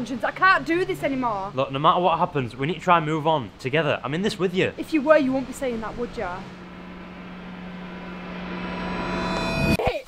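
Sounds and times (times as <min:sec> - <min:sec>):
low hum: 0:00.0 - 0:09.8
high whine and hiss riser: 0:03.6 - 0:09.8.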